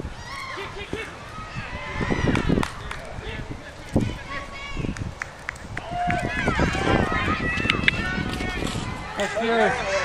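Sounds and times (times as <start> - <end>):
voices shouting: 0.1 - 10.0.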